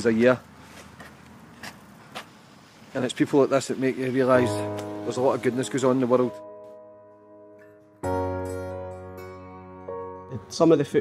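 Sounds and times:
distant road traffic hiss: 0.0 - 4.4.

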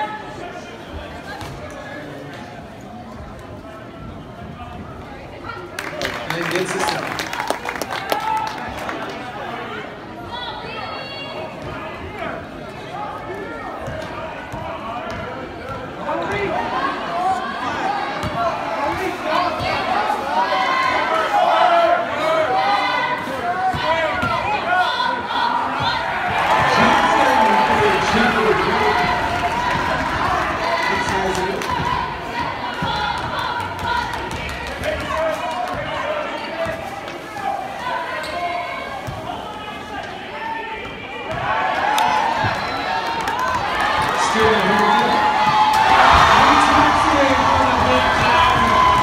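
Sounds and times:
crowd chatter and shouts: 0.0 - 49.0
crowd cheering: 5.6 - 9.7, 16.3 - 36.8, 39.2 - 49.0.

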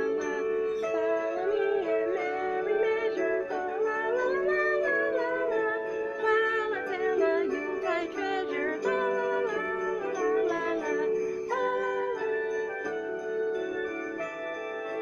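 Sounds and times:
woman singing: 0.0 - 13.8
instrumental backing track: 0.0 - 15.0.

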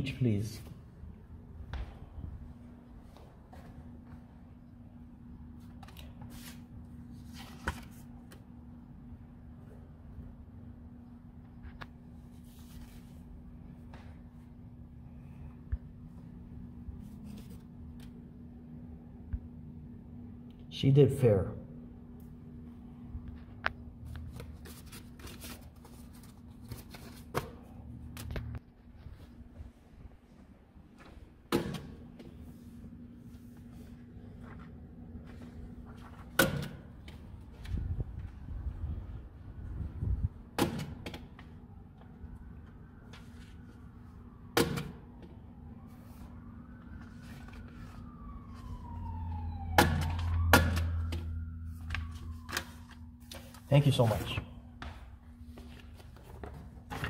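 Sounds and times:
paper rustling: 5.5 - 8.5, 11.6 - 13.4, 17.0 - 18.2, 24.0 - 29.4, 32.3 - 38.3, 45.9 - 48.8, 55.3 - 57.0
faint siren wailing: 41.4 - 55.6.

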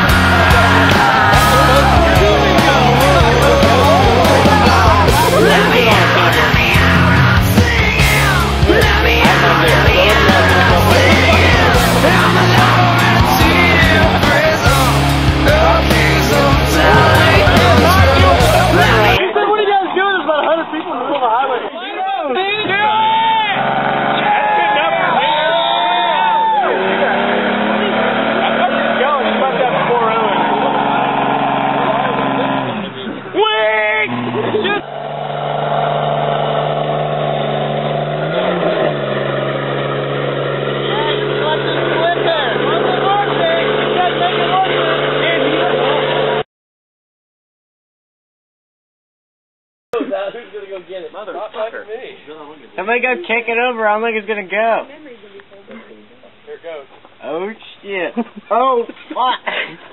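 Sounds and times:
engines revving high: 0.0 - 19.2, 22.6 - 46.4
people's voices: 0.0 - 36.8, 38.3 - 46.4.

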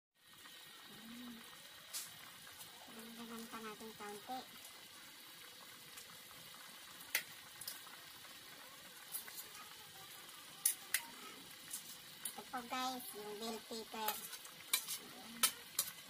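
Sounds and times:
stew bubbling: 0.2 - 16.0.

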